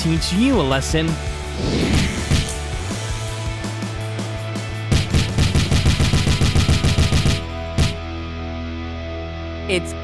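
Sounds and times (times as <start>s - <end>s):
background music: 0.0s - 10.0s
punch sound effects: 1.6s - 2.6s, 4.9s - 8.0s.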